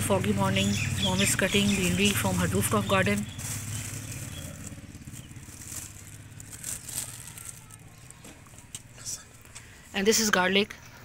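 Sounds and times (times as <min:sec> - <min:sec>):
low engine hum: 0:00.0 - 0:09.8
herb stems rustling and snapping: 0:01.7 - 0:09.7.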